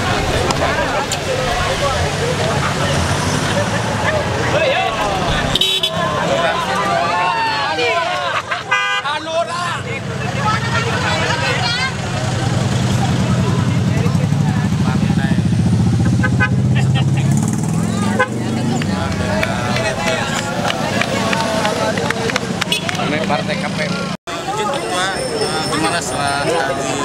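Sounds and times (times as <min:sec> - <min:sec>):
crowd voices and shouts: 0:00.0 - 0:27.0.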